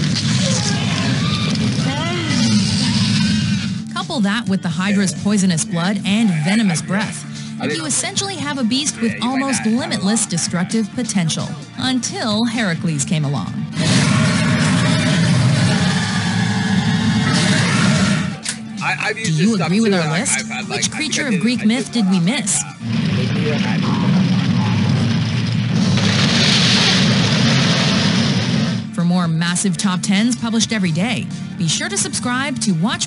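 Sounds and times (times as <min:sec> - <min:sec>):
monster roaring deep growl: 0:00.0 - 0:03.8, 0:13.7 - 0:18.4, 0:22.8 - 0:28.8
loud low rumble: 0:22.8 - 0:29.0.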